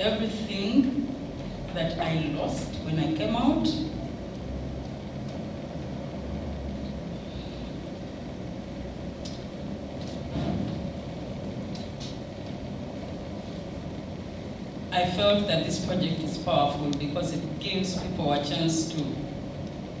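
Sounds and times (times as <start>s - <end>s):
low room noise rumble: 0.0s - 20.0s.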